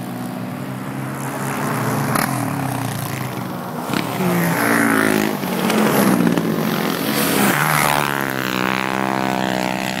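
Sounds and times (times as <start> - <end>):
racing atv engines: 0.0 - 10.0.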